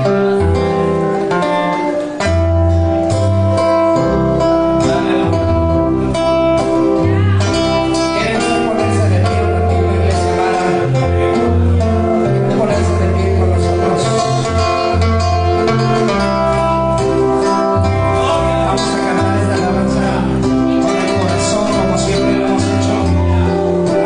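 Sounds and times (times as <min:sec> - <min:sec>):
acoustic guitar: 0:00.0 - 0:24.0
bass line: 0:00.0 - 0:24.0
man singing into a microphone: 0:07.1 - 0:16.9, 0:18.0 - 0:24.0.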